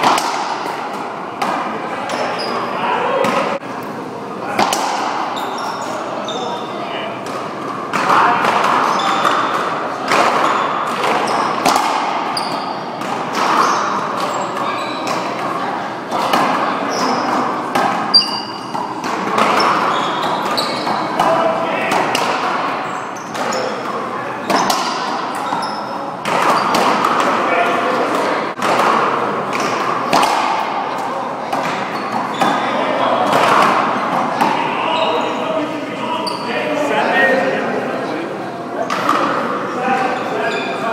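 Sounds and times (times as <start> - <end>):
ball smacking racquets and walls: 0.0 - 3.6, 4.4 - 6.0, 7.2 - 34.9, 38.8 - 40.1.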